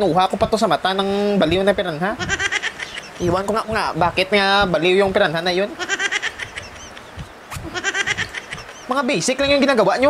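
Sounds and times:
person laughing: 0:02.0 - 0:03.8, 0:05.4 - 0:08.9.

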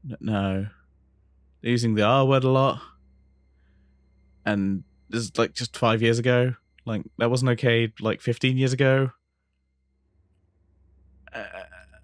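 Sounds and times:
man saying uh: 0:00.0 - 0:00.7, 0:01.7 - 0:02.8, 0:04.5 - 0:09.1, 0:11.4 - 0:11.8.

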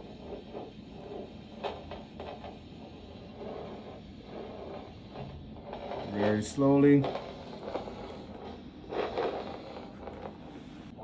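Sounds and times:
probe scraping through gel: 0:00.0 - 0:11.0.

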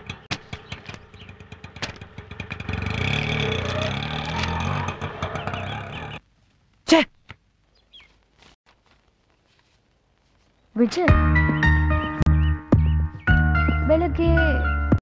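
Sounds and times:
auto-rickshaw engine running: 0:00.0 - 0:06.2.

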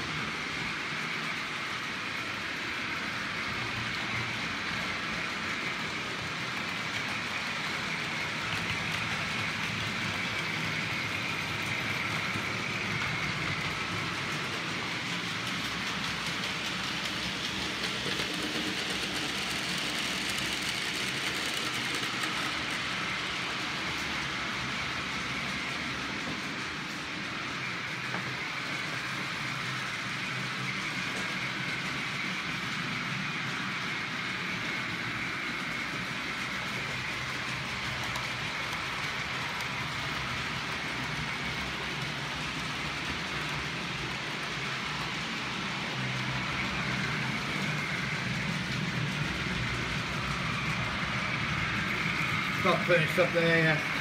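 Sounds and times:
model trains whirring on track: 0:00.0 - 0:54.0.

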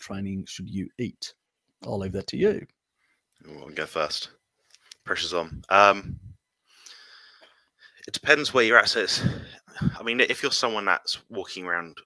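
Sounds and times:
person speaking: 0:00.0 - 0:02.6, 0:03.5 - 0:07.1, 0:08.0 - 0:12.0
person saying um: 0:01.9 - 0:02.6, 0:05.4 - 0:06.3
faint breath in: 0:06.7 - 0:08.0, 0:09.1 - 0:10.0.

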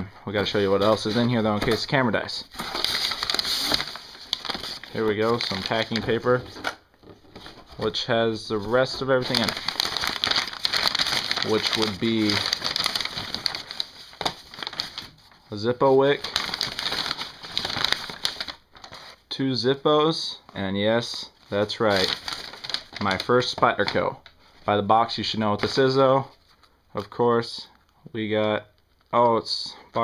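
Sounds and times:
packing paper rustling: 0:00.0 - 0:19.2, 0:21.0 - 0:26.8
cardboard scraping: 0:00.7 - 0:08.0.

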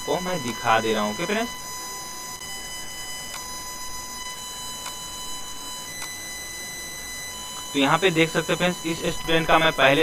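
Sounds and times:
high-pitched electrical whine: 0:00.0 - 0:10.0.

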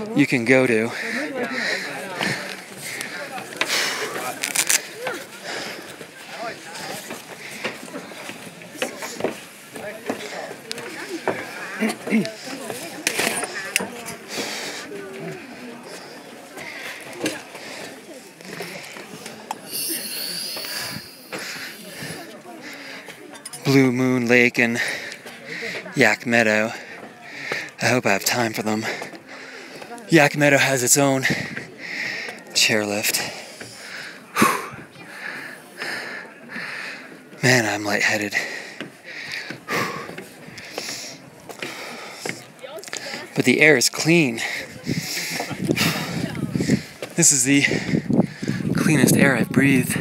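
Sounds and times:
man breathing hard: 0:19.7 - 0:23.1, 0:33.3 - 0:37.2, 0:38.4 - 0:43.3, 0:47.6 - 0:48.8
people chatting: 0:48.7 - 0:50.0.

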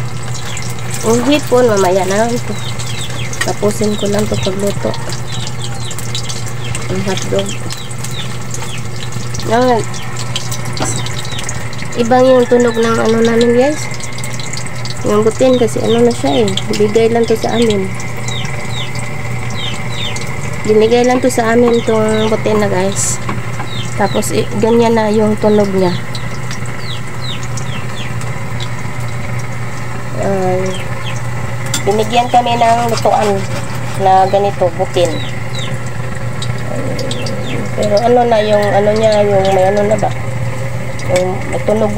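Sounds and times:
chicken peeping: 0:00.0 - 0:28.7, 0:31.9 - 0:40.2
hot dogs sizzling in a wok: 0:00.0 - 0:41.9
steady low hum: 0:00.0 - 0:41.9
small ticks and pops: 0:00.2 - 0:24.8, 0:25.4 - 0:29.9.

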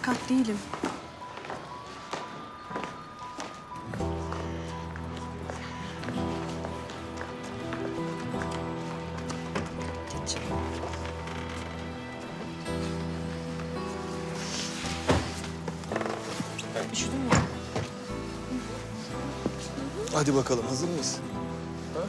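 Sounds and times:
dramatic music with held notes: 0:00.0 - 0:22.0.

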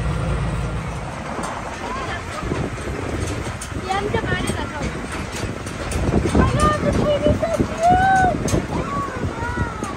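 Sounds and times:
passenger wagon rumbling: 0:00.0 - 0:09.9.

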